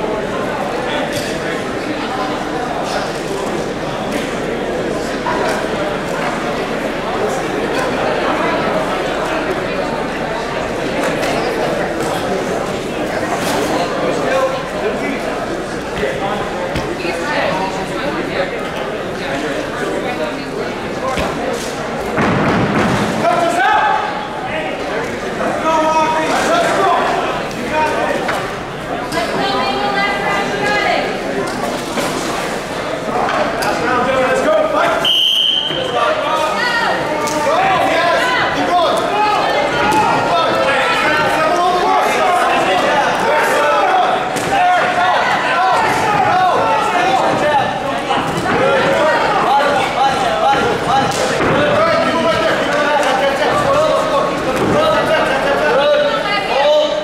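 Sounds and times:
voices echoing in a large hall: 0:00.0 - 0:57.0
voices shouting: 0:34.7 - 0:57.0.

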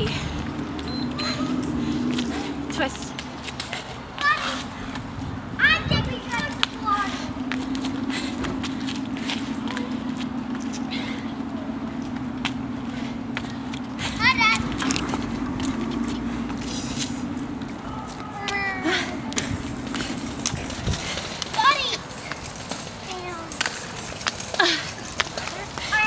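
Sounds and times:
steady low hum: 0:00.0 - 0:23.0
children shouting: 0:01.1 - 0:02.6, 0:04.2 - 0:05.0.

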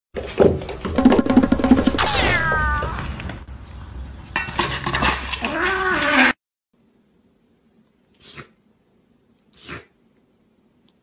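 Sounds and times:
cat meowing: 0:02.0 - 0:03.2
metal food bowl clattering on tiles: 0:04.4 - 0:06.2.

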